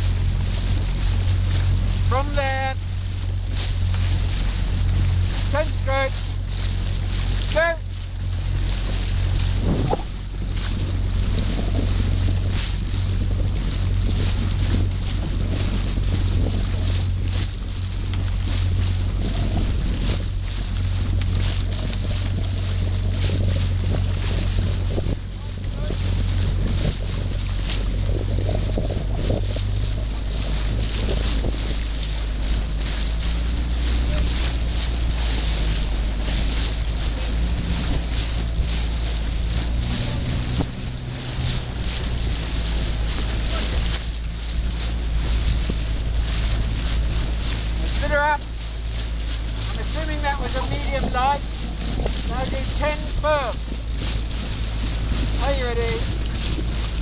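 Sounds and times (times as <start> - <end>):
outboard engine running: 0.0 - 57.0
water rushing by: 0.0 - 57.0
wind on microphone: 0.0 - 57.0.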